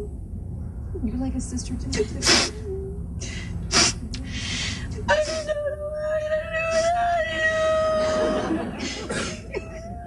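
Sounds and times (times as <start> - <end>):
sharp gasping breath: 3.2 - 4.9
woman crying: 4.9 - 10.0.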